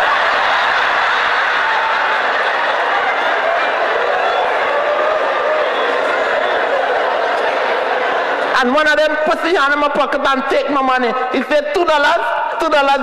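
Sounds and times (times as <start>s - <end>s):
large audience laughing: 0.0s - 8.6s.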